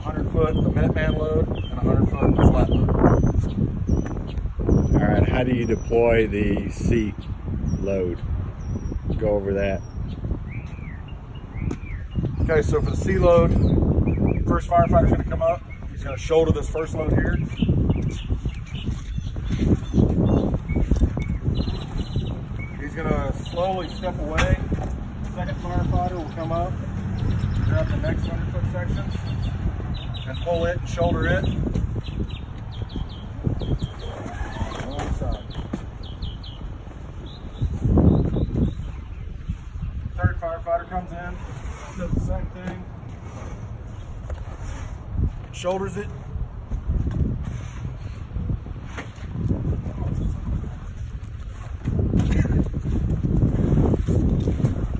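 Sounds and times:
bird chirping: 7.1 - 40.0
fire hose rustling: 41.2 - 54.9.

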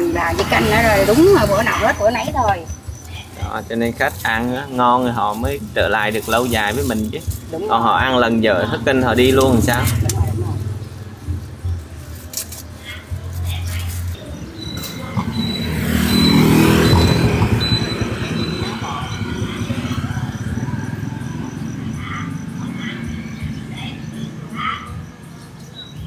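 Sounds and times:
motorbike passing: 0.0 - 26.0
street traffic hum: 0.0 - 26.0.

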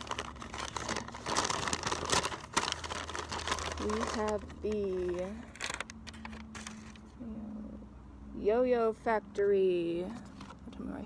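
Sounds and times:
packaging rustling and crinkling: 0.0 - 7.2.

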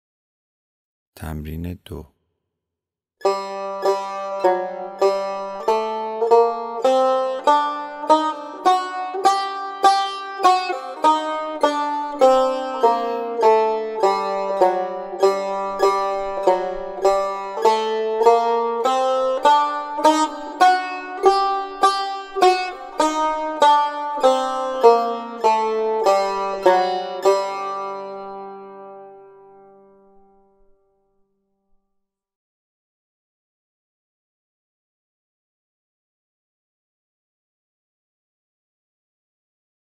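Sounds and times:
plucked lute melody: 3.2 - 30.7.

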